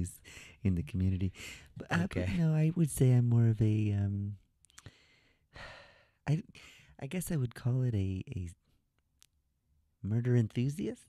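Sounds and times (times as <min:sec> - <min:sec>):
man speaking: 0:00.0 - 0:04.4, 0:06.3 - 0:08.6, 0:10.0 - 0:11.0.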